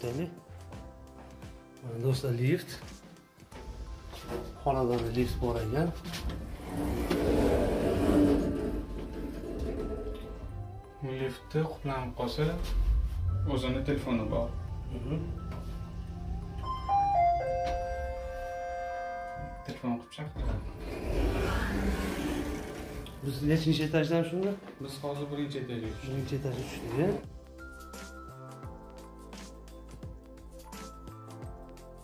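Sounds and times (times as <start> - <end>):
lift doors sliding open: 4.2 - 10.8, 20.4 - 23.8, 26.0 - 27.2
low rumble: 11.8 - 17.4.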